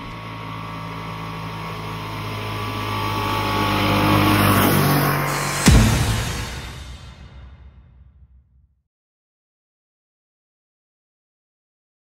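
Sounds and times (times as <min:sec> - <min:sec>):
small two-stroke car engine: 0:00.0 - 0:05.9.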